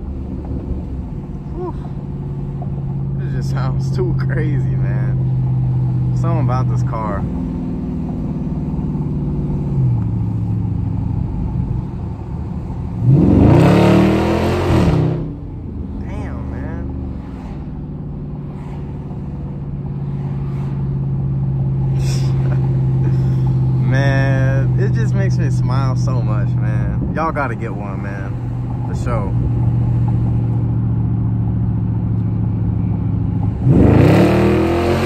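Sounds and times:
car engine cruising from cabin: 0:00.0 - 0:35.0.

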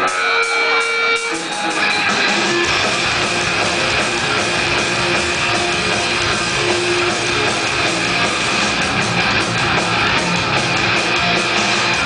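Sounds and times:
held guitar notes ringing: 0:00.0 - 0:12.0
rock band playing: 0:00.0 - 0:12.0.

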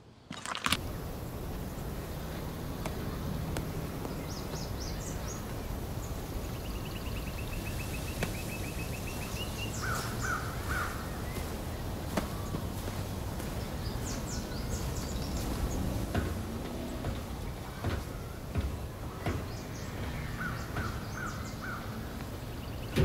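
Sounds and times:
low outdoor background: 0:00.0 - 0:23.0
birds calling: 0:00.4 - 0:23.0.

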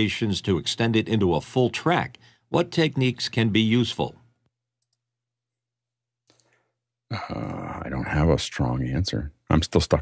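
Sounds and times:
man speaking: 0:00.0 - 0:04.2, 0:07.1 - 0:10.0.

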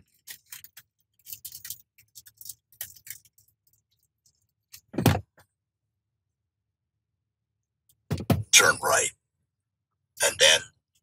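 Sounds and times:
small items clicking and rustling: 0:00.0 - 0:04.9.

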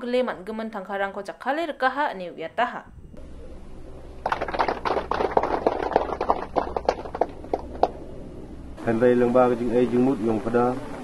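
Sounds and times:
people clapping: 0:04.2 - 0:08.0.

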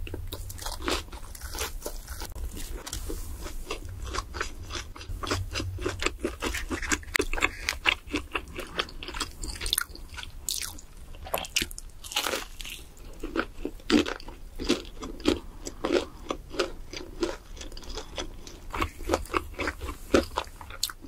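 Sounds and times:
chewing crispy fried chicken: 0:00.0 - 0:21.0.

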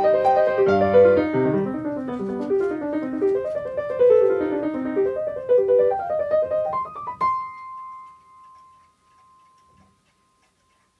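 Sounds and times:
clock ticking softly: 0:07.2 - 0:11.0.

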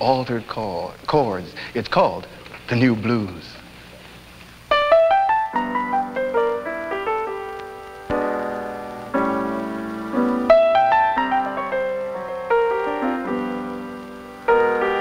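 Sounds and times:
jazz piano playing slow blues: 0:04.7 - 0:15.0.

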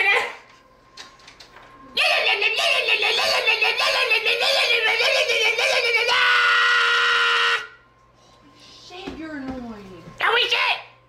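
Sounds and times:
person screaming high-pitched: 0:02.0 - 0:07.8.

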